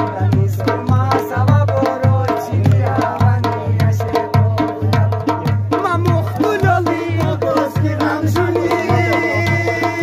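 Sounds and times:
drums keeping a steady beat: 0.0 - 10.0
man singing: 0.0 - 10.0.

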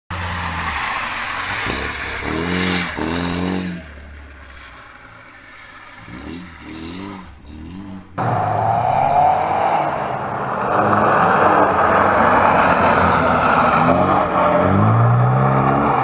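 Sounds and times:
rally car engine revving: 0.1 - 16.0.

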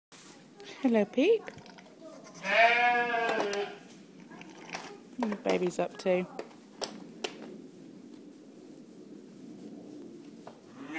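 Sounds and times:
sheep bleating: 2.3 - 3.8.

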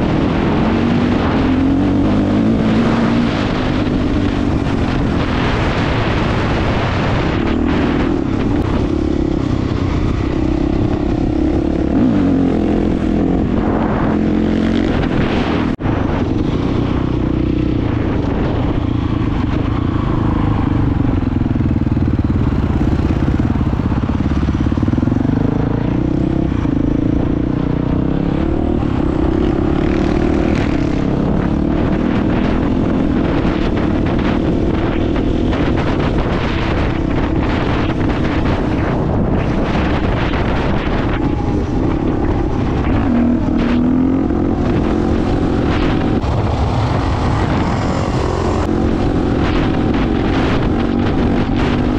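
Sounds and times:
dirt bike engine revving: 0.0 - 18.8, 22.7 - 51.9.

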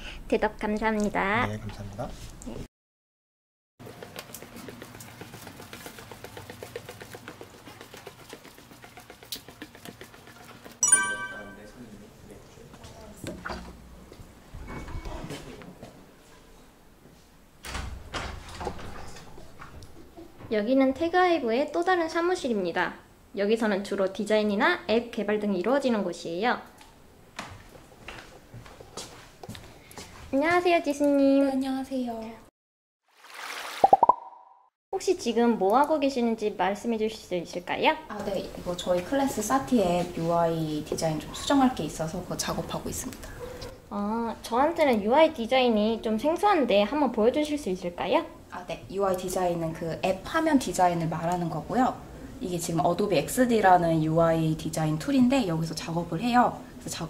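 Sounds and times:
electronic chime: 10.8 - 11.8
rising cartoon pops: 33.8 - 34.6.

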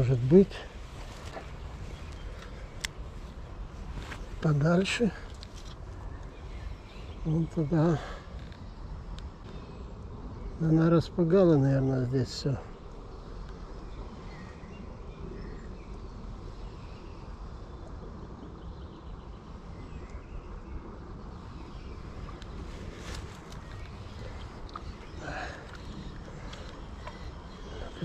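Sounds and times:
riverside ambience: 0.0 - 28.0
wind rumble on microphone: 0.0 - 28.0
faint clicks: 22.2 - 27.6.

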